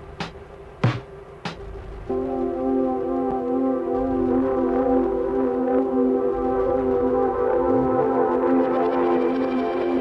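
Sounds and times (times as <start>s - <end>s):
synthesizer drone: 1.7s - 10.0s.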